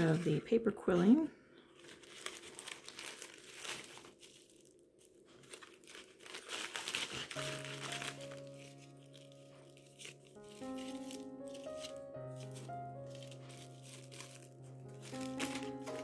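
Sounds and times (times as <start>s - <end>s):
plastic bags crinkling: 1.7s - 16.0s
background music with held notes: 6.8s - 16.0s.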